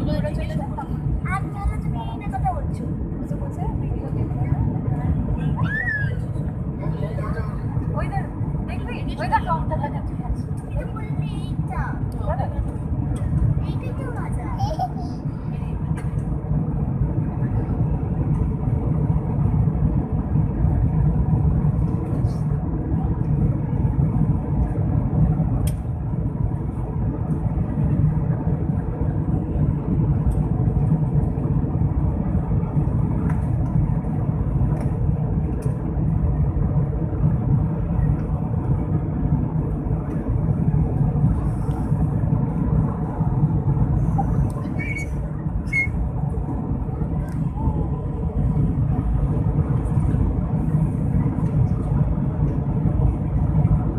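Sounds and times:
jet engine cabin drone: 0.0s - 53.9s
rushing airflow: 0.0s - 53.9s.

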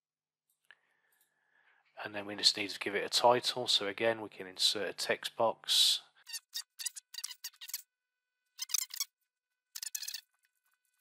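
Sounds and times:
keyboard and mouse clicks: 9.8s - 10.3s.

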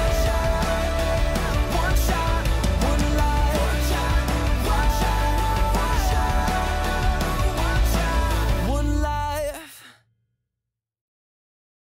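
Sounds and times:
rock song held sung note: 0.0s - 9.9s.

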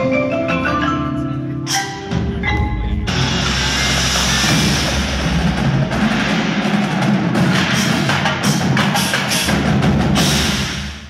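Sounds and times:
percussion ensemble playing: 0.0s - 11.0s
sharp drum strokes: 3.1s - 11.0s.

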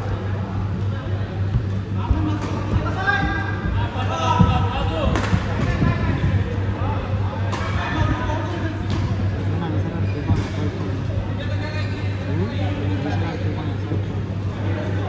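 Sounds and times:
people talking: 0.0s - 15.0s
steady low hum: 0.0s - 15.0s.

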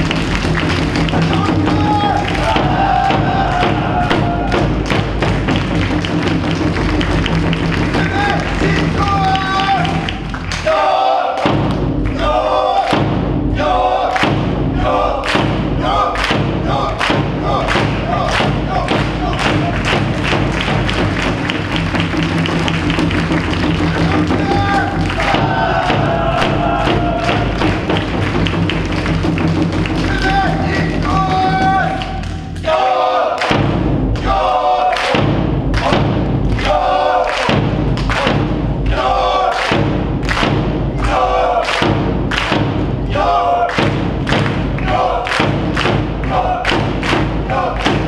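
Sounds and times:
brass band playing: 0.0s - 6.2s
bass drum beat: 0.0s - 10.7s, 11.4s - 32.8s, 33.4s - 48.0s.

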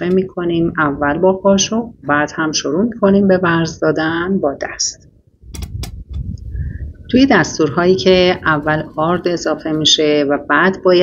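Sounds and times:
low handling rumble: 5.4s - 9.9s.

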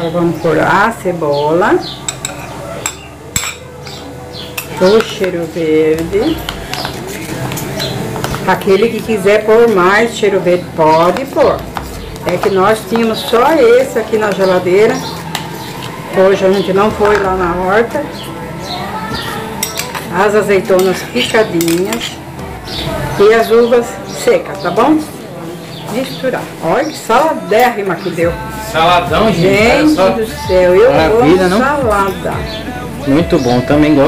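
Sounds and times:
metal spoon clinking on glass bowl: 2.0s - 5.4s, 19.6s - 20.1s, 20.8s - 22.2s.

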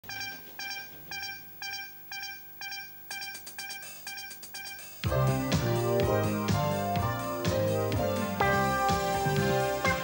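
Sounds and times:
electronic countdown beeps: 0.0s - 5.6s.

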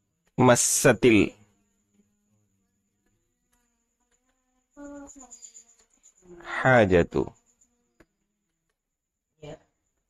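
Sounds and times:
man speaking: 0.4s - 1.3s, 6.4s - 7.3s.

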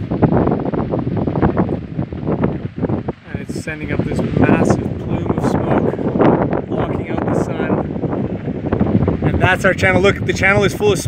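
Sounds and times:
fire crackling and popping: 0.0s - 11.0s
wind buffeting microphone: 0.0s - 11.0s.

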